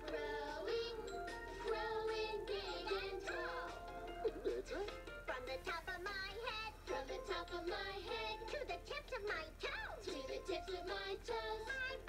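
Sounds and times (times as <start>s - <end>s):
backing music: 0.0s - 8.9s.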